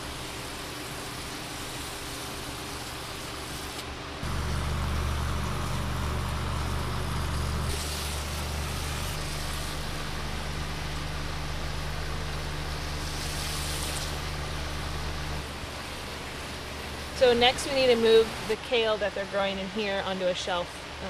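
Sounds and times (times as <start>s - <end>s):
water spraying from hose nozzle: 0.0s - 18.5s
low mechanical hum: 0.0s - 21.0s.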